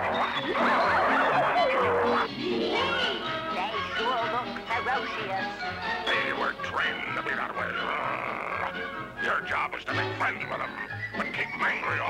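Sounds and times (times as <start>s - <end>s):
nasal comic vocal noises: 0.0s - 3.2s, 7.9s - 8.9s
cartoon soundtrack music: 0.0s - 12.0s.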